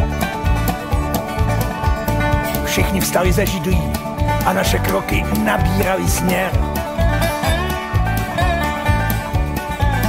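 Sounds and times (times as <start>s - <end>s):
country band playing: 0.0s - 10.0s.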